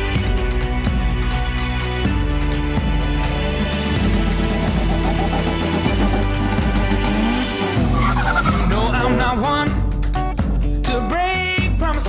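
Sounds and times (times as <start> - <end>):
music track: 2.3 - 10.6
tyres squealing: 7.0 - 9.7.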